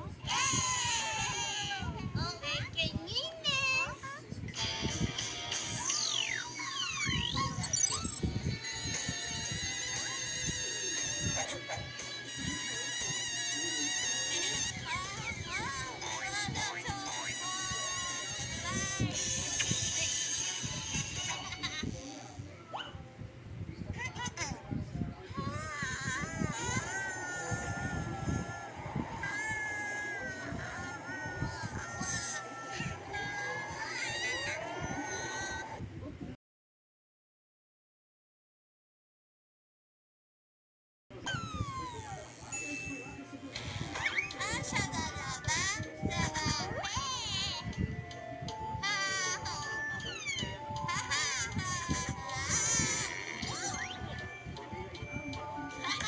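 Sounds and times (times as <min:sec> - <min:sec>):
squeaky cartoon character sounds: 0:00.2 - 0:01.9, 0:03.5 - 0:22.9, 0:25.3 - 0:35.8, 0:41.2 - 0:47.8, 0:48.8 - 0:54.4, 0:55.0 - 0:56.0
cartoon background music: 0:04.6 - 0:22.9, 0:25.4 - 0:35.8, 0:41.3 - 0:56.0.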